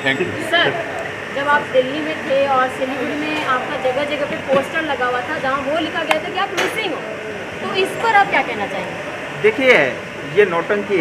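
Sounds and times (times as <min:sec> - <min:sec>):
people speaking: 0:00.0 - 0:07.0, 0:07.6 - 0:11.0.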